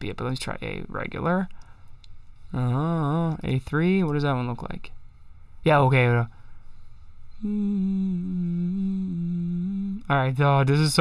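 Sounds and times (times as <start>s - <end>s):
man humming steady note: 2.5s - 3.4s, 7.3s - 10.2s.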